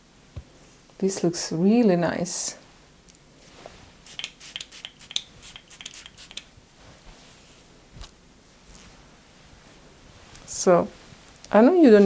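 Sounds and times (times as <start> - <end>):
fingers rubbing through hair: 3.5 - 9.1.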